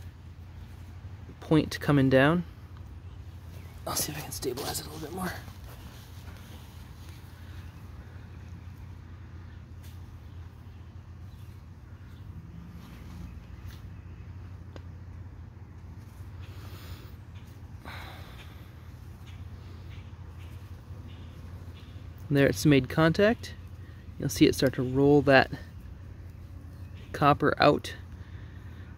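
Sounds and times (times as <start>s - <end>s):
low steady hum: 0.0s - 28.9s.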